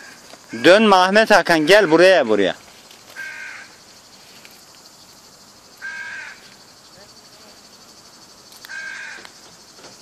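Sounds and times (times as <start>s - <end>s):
faint high hiss: 0.0s - 10.0s
crow cawing: 3.1s - 3.8s, 5.8s - 6.6s, 8.6s - 9.4s.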